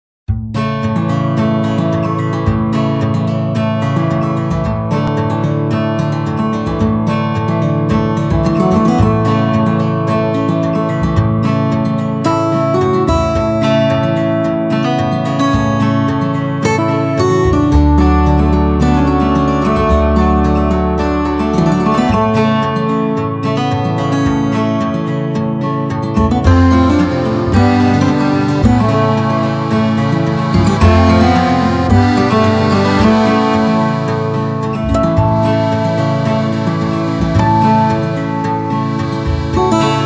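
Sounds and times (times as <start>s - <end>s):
strummed acoustic guitar music: 0.3s - 40.0s.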